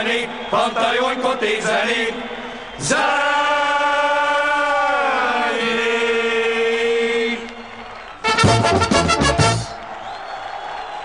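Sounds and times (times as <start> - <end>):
singer and choir holding a note: 0.0 - 7.6.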